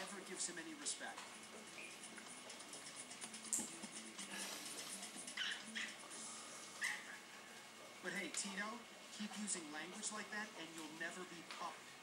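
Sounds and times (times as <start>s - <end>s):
puppy yipping: 5.3s - 6.0s, 6.8s - 7.2s.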